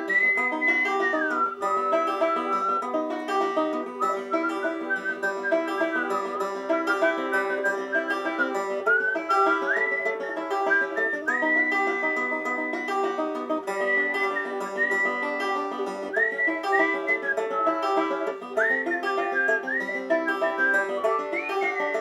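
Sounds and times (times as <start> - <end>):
banjo picking chords: 0.0 - 22.0
whistled melody: 0.0 - 22.0.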